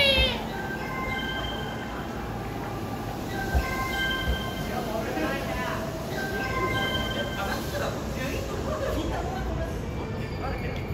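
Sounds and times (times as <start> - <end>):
electric train rolling: 0.0 - 10.9.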